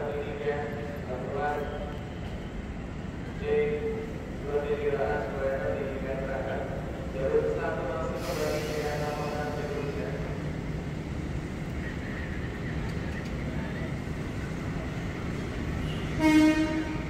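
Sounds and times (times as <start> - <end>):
train rumbling on tracks: 0.0 - 17.0.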